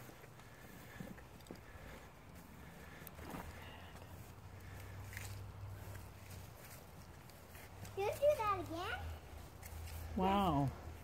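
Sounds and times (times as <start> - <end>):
faint footsteps: 0.0 - 11.0.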